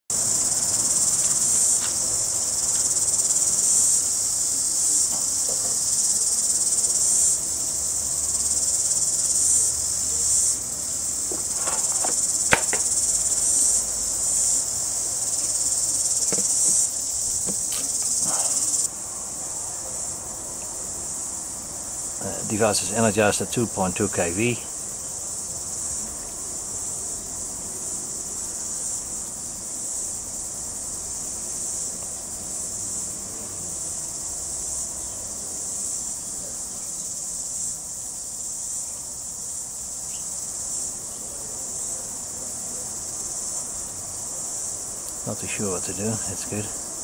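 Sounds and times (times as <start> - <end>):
insect chorus: 0.1 - 47.0.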